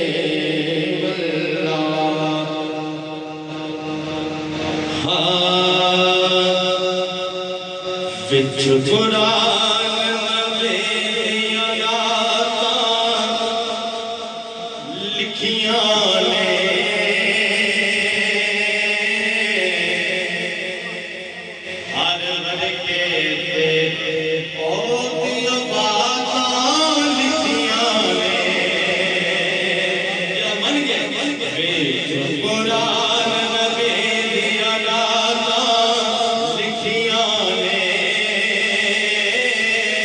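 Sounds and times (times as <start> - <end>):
man chanting devotional song: 0.0 - 40.0.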